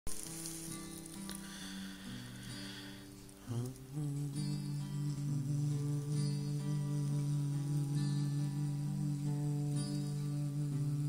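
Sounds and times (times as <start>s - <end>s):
guitar sustained notes: 0.1s - 11.0s
steady high hiss: 0.1s - 11.0s.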